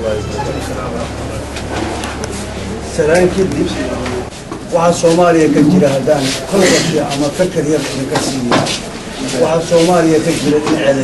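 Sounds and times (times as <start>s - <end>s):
man speaking: 4.8s - 8.5s.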